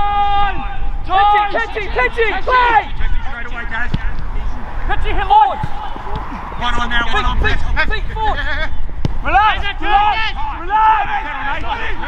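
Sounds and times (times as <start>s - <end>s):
men shouting: 0.0s - 3.4s, 9.2s - 12.0s.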